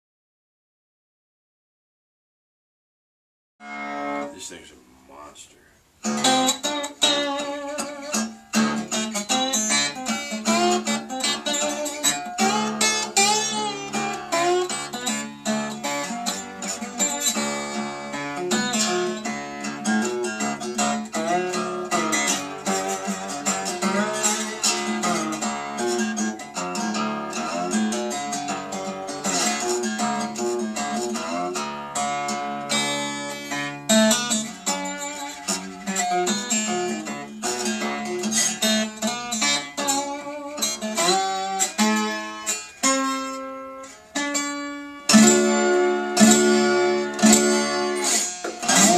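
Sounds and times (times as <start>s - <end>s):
slide guitar: 3.6s - 5.4s, 6.0s - 48.9s.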